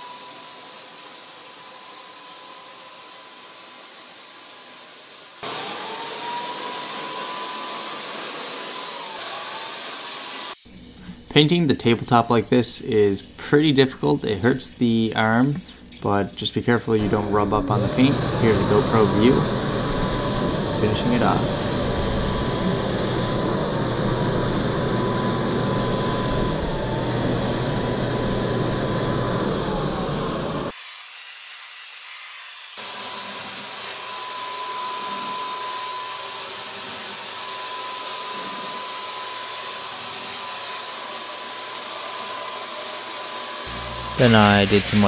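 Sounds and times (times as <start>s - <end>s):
paint sprayer air hiss: 10.5s - 17.0s
high whine: 10.6s - 30.7s, 43.7s - 45.0s.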